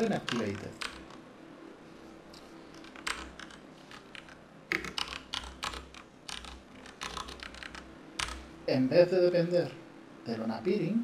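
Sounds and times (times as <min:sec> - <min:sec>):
keyboard typing: 0:00.0 - 0:01.2, 0:02.4 - 0:08.5.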